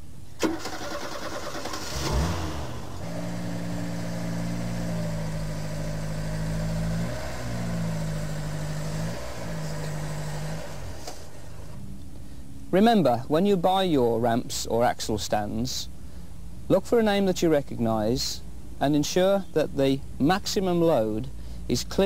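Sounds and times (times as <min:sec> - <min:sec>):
car engine cranking and starting: 0:00.3 - 0:11.9
car engine running: 0:01.9 - 0:12.0.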